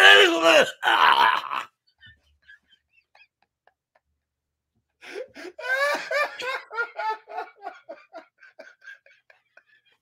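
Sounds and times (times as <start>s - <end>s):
man laughing hard: 0.0s - 4.0s, 5.1s - 10.0s.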